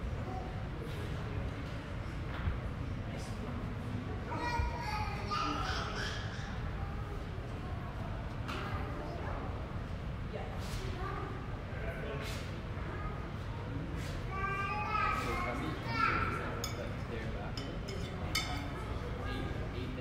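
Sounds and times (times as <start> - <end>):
indistinct voices in echoing hall: 0.0 - 20.0.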